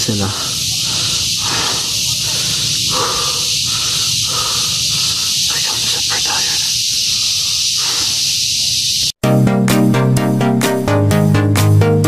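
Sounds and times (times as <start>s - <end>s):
person breathing hard: 0.0s - 8.3s
high-pitched insect drone: 0.0s - 9.2s.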